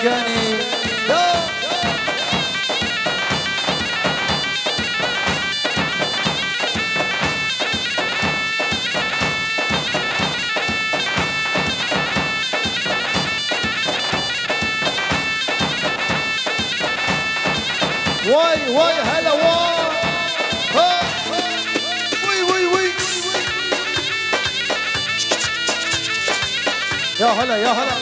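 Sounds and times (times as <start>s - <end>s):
keyboard lead melody: 0.0s - 28.0s
quick drum beat: 0.1s - 28.0s.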